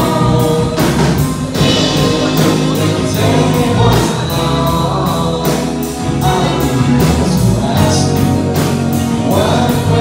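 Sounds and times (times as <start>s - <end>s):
bass guitar: 0.0s - 10.0s
drums on steady beat: 0.0s - 10.0s
electric guitars: 0.0s - 10.0s
person singing: 0.0s - 10.0s.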